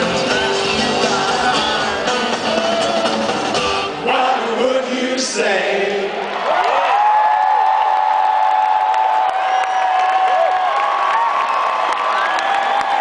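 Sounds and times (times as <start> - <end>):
rock song: 0.0 - 5.8
crowd cheering and whooping: 6.2 - 13.0.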